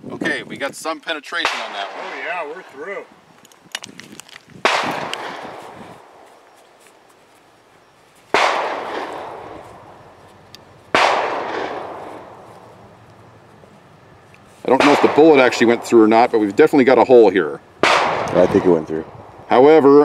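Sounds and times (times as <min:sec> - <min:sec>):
gunshots with echo: 0:01.4 - 0:02.3, 0:04.6 - 0:06.2, 0:08.3 - 0:10.0, 0:10.9 - 0:12.5, 0:14.7 - 0:16.2, 0:17.8 - 0:18.9
gun handling clicks: 0:03.4 - 0:05.4.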